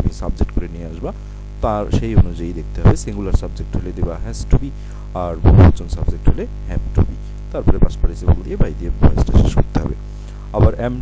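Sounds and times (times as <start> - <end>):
electrical mains hum: 0.0 - 11.0
man's voice: 0.0 - 11.0.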